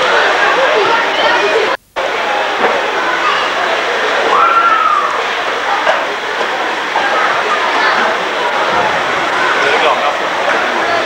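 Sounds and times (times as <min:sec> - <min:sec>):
babble of distant voices: 0:00.0 - 0:11.0.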